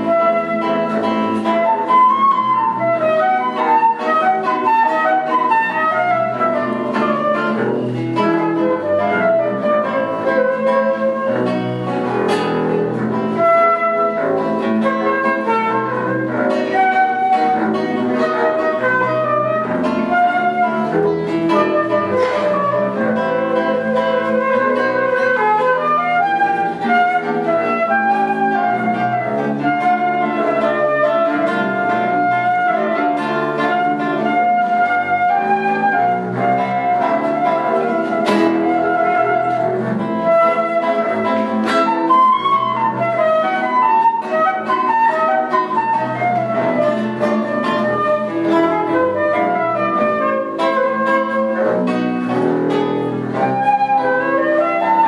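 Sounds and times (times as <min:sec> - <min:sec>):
bowed double bass: 0:00.0 - 0:55.0
flute melody: 0:00.0 - 0:55.0
nylon-string guitar: 0:00.0 - 0:55.0.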